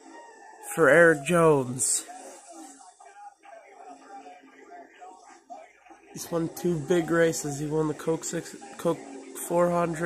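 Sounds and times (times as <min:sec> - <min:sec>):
commentator's voice on television: 0:00.0 - 0:10.0.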